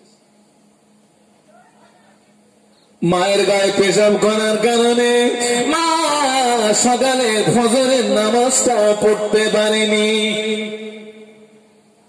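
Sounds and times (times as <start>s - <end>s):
man chanting over loudspeaker: 3.0s - 11.7s.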